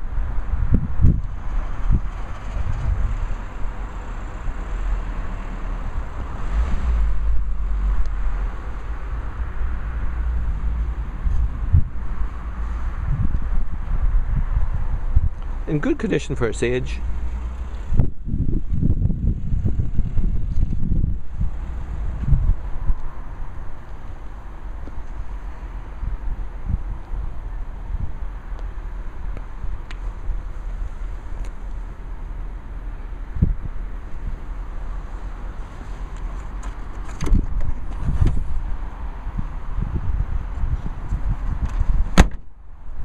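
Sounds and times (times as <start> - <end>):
wind buffeting microphone: 0.0 - 32.0, 33.1 - 43.0.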